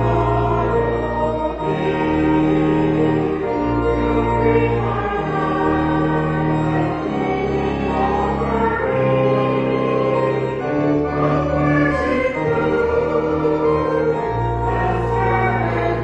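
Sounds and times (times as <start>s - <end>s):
choir singing a hymn: 0.0s - 16.0s
organ chords: 0.0s - 16.0s.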